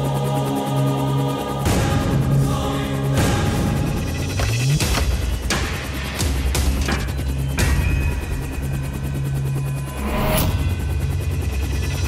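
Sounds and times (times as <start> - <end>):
helicopter rotor chop: 0.0 - 12.0.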